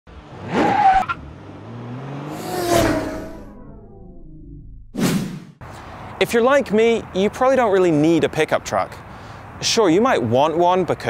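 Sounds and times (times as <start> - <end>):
screech like skidding tyres: 0.3 - 1.3, 2.0 - 3.6
low rising tone: 1.3 - 5.6.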